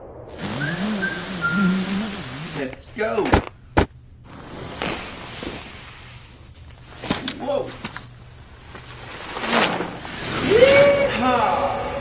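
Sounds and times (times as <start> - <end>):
skis scraping on wooden floor: 8.6 - 10.4.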